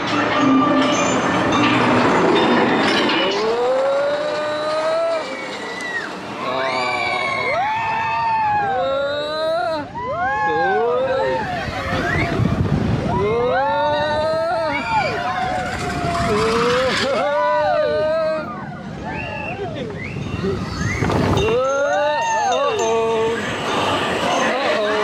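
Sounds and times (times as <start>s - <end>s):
roller coaster car rumbling: 0.0s - 25.0s
riders screaming and whooping: 3.2s - 25.0s.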